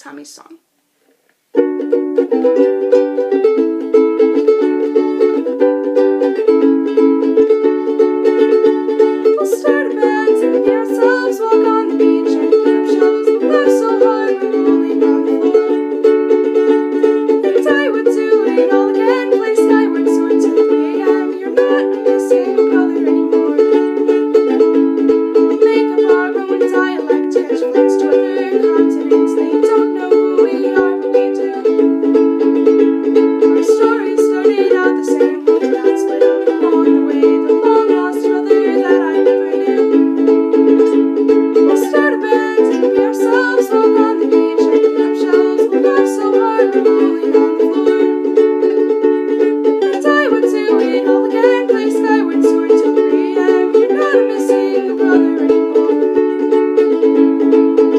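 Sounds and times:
ukulele strumming chords: 0:01.3 - 0:57.9
girl singing: 0:01.7 - 0:57.9.

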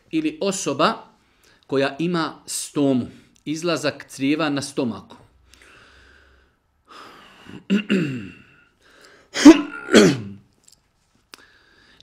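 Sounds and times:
man coughing: 0:07.6 - 0:08.5, 0:09.3 - 0:10.4.

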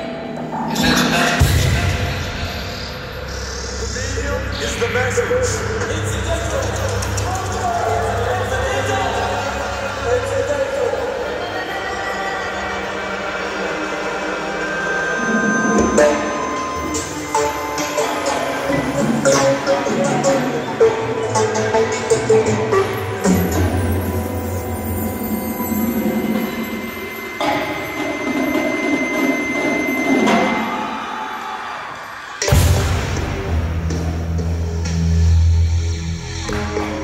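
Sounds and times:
percussion ensemble playing chords: 0:00.2 - 0:31.3, 0:32.4 - 0:37.0.

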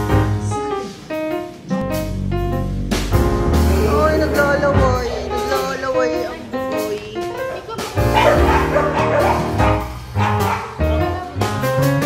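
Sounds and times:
background music: 0:00.0 - 0:12.0
dog barking: 0:08.1 - 0:11.0.

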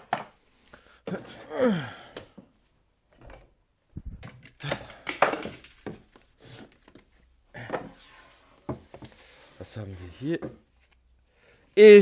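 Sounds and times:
items knocking and thunking: 0:00.0 - 0:00.4, 0:03.1 - 0:09.4, 0:10.4 - 0:10.7.

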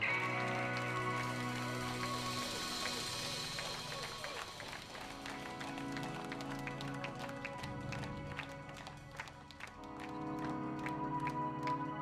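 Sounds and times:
electric guitar: 0:00.0 - 0:12.0.

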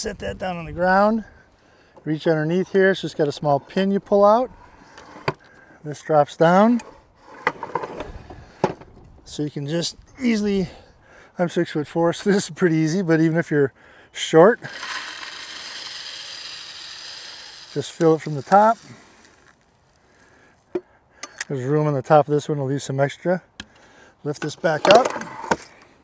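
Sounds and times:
bird feeder sliding clatter: 0:14.6 - 0:19.4.

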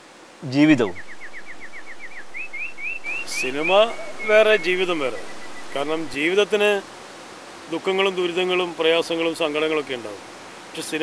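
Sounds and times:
bird calling in short notes: 0:00.8 - 0:06.1.

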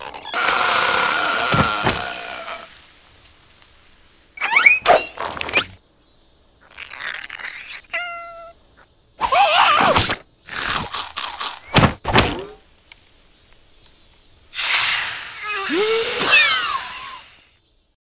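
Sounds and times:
cartoon character squeaky vocalizations: 0:04.4 - 0:05.1, 0:15.4 - 0:17.3.

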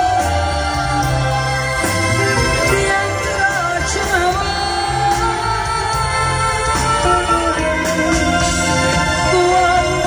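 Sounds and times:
live band music: 0:00.0 - 0:10.0
woman singing: 0:00.0 - 0:10.0.

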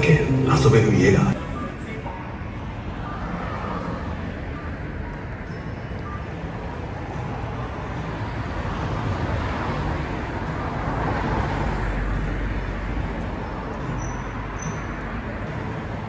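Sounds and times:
car passing close: 0:00.0 - 0:16.0
city road traffic: 0:00.0 - 0:16.0.

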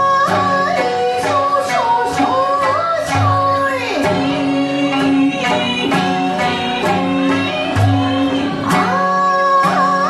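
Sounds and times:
plucked small stringed instruments: 0:00.0 - 0:10.0
women singing: 0:00.0 - 0:10.0.

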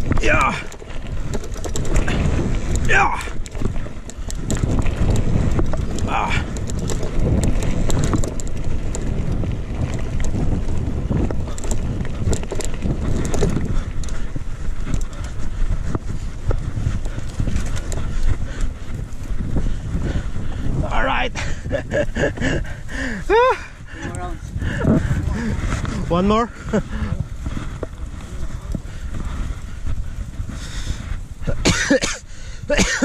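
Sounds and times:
bike rattling and knocking: 0:00.0 - 0:33.0
tyres rolling on gravel: 0:00.0 - 0:33.0
wind buffeting microphone: 0:00.0 - 0:33.0.

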